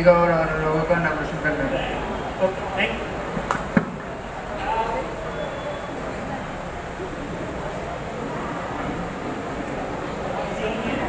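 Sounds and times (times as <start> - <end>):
faint indistinct voices: 0.0 - 11.0
room noise hum: 0.0 - 11.0.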